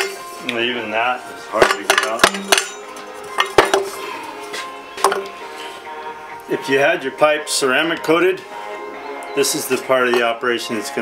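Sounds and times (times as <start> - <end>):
faint music: 0.0 - 11.0
metal tools clinking: 1.6 - 4.0.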